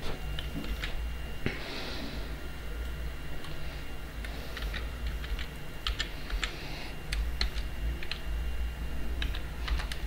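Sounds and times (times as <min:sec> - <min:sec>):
low steady hum: 0:00.0 - 0:10.0
keyboard typing: 0:04.6 - 0:06.5, 0:07.1 - 0:08.2, 0:09.2 - 0:10.0.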